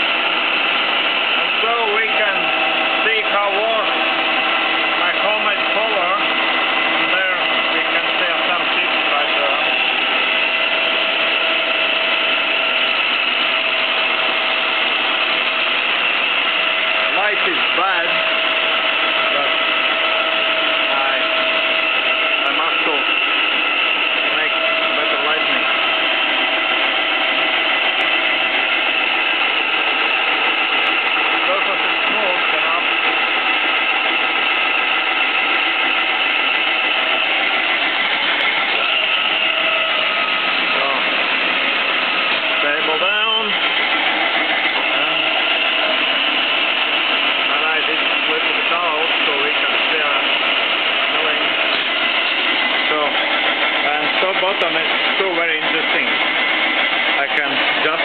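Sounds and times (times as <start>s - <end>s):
milling machine running: 0.0s - 58.0s.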